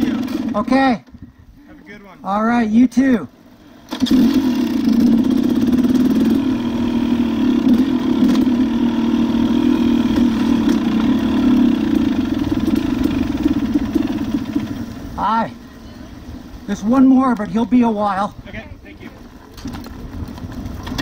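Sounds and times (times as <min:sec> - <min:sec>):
dirt bike engine: 0:00.0 - 0:21.0.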